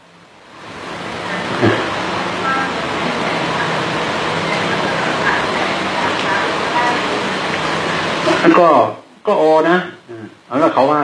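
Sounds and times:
rushing background noise: 0.0s - 11.0s
faint voices: 1.1s - 11.0s.

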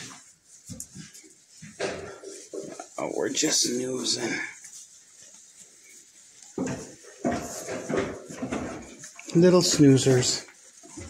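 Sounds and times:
goat eating hay: 0.0s - 11.0s.

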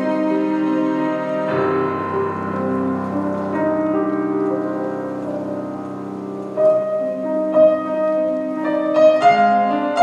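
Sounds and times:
piano trio chamber music: 0.0s - 10.0s.

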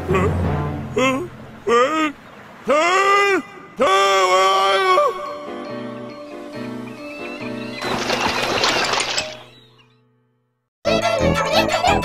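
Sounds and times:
person shouting: 1.0s - 5.2s.

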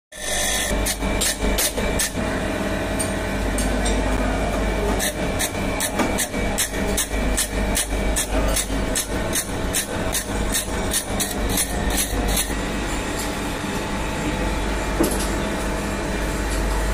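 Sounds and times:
surface grinder humming: 0.1s - 2.4s, 4.7s - 14.5s.

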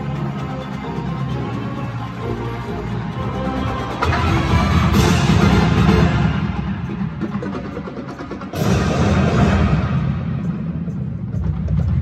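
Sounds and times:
marching band playing: 0.0s - 11.9s.

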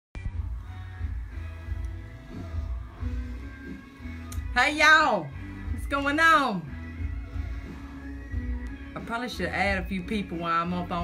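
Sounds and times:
background music with pulsing bass: 0.2s - 11.0s.

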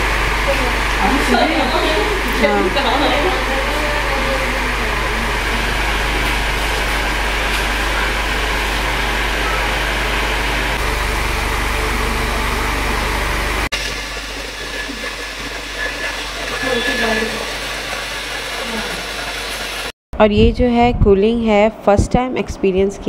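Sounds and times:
electric appliance hissing and humming: 0.0s - 19.9s.

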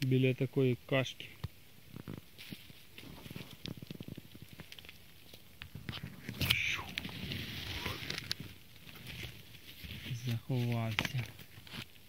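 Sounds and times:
dry leaves crackling and rustling: 2.0s - 12.0s.

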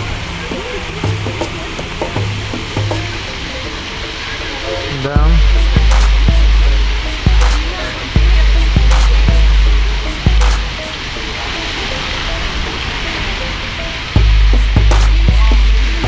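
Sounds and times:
heavy low rumbling: 0.0s - 11.6s, 14.2s - 16.0s
background music: 0.0s - 16.0s
fountain water splashing: 0.0s - 16.0s
voices: 0.0s - 16.0s.

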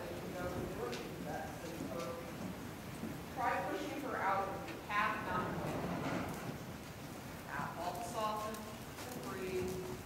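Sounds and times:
horse hoofbeats on sand: 4.4s - 10.0s.

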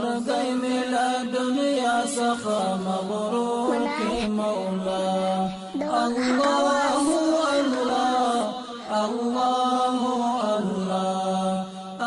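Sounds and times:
voice chanting wavering notes: 3.6s - 9.1s.

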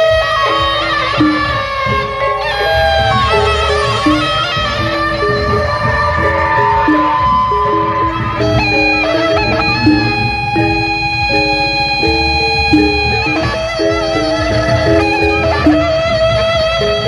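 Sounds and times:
bamboo flute melody: 0.0s - 17.0s
cymbals: 0.0s - 17.0s
small kettle gongs: 0.0s - 17.0s.

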